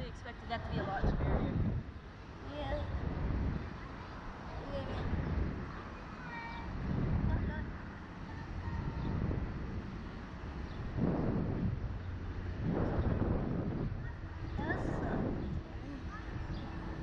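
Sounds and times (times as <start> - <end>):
wind rumbling on microphone: 0.0 - 17.0
faint voices: 2.4 - 11.4, 12.1 - 17.0.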